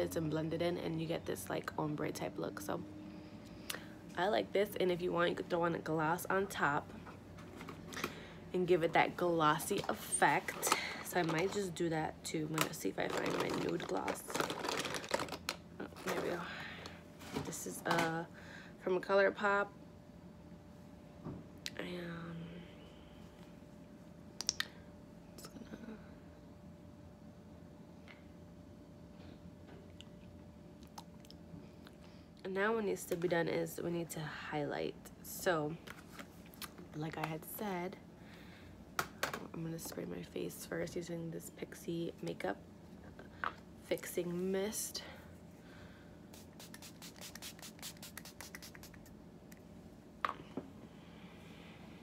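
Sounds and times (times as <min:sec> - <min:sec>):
spray bottle spritzing: 0:46.4 - 0:49.1.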